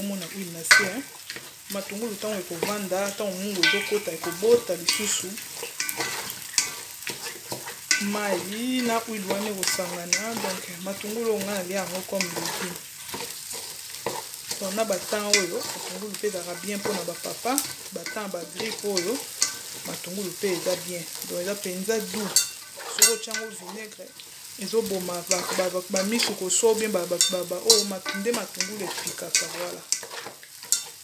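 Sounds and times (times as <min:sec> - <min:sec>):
onions sizzling in oil: 0:00.0 - 0:31.0
wooden spoon scraping pot: 0:00.0 - 0:31.0.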